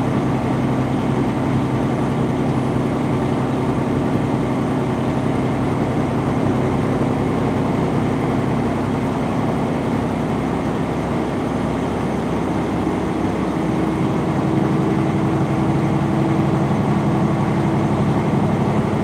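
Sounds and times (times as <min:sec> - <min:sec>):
road and tyre noise: 0:00.0 - 0:19.0
steady engine tone: 0:00.0 - 0:19.0
truck diesel engine running: 0:00.0 - 0:19.0.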